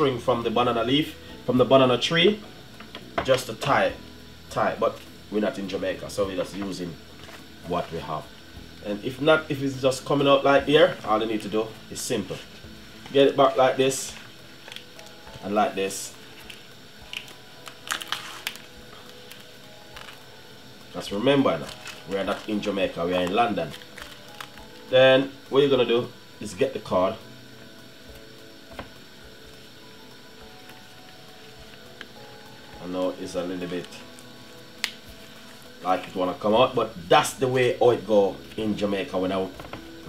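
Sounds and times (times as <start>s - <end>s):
quiet background music: 0.0s - 40.0s
leaf rustling and crackling: 4.8s - 27.0s, 30.4s - 40.0s.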